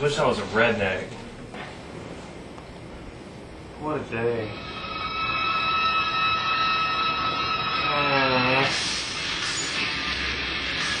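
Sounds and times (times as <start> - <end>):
high-pitched electronic alarm tone: 4.5 - 11.0.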